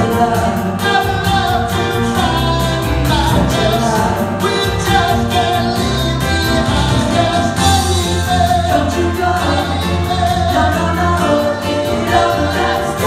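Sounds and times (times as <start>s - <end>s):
backing music with steady beat: 0.0s - 13.0s
women singing together: 11.2s - 13.0s.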